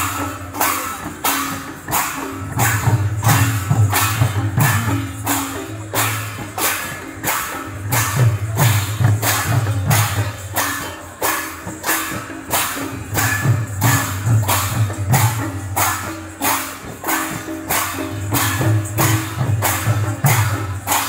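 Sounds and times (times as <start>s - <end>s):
brass hand cymbals clashing: 0.0s - 21.0s.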